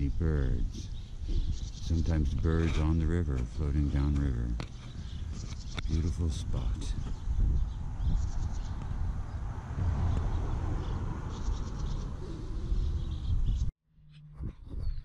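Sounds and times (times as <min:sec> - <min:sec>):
small birds chirping: 0:00.0 - 0:13.7.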